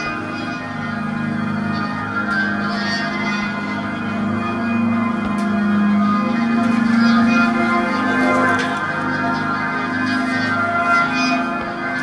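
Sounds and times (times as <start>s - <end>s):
low pulsing hum: 0.0s - 12.0s
sustained drone tones: 0.0s - 12.0s.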